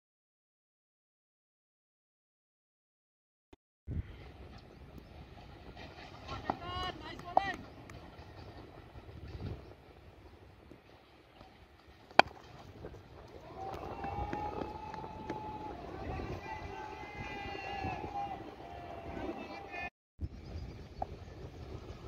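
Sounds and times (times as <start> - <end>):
cricket bat striking ball: 12.2 - 12.4
players shouting: 13.3 - 19.9.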